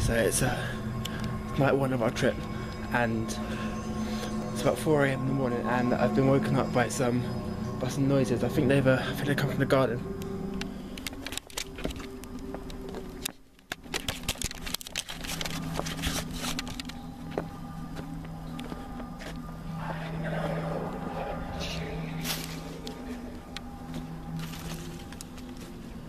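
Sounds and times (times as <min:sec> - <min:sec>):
low music drone: 0:00.0 - 0:26.0
clicks and crackles: 0:10.2 - 0:17.1.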